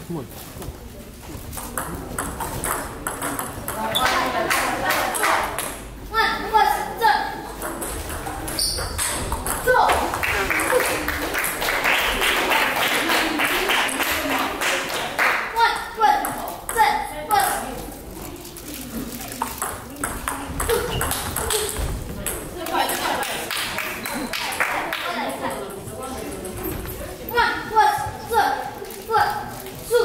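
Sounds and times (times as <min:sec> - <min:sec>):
table tennis ball clicking: 0:01.6 - 0:05.7.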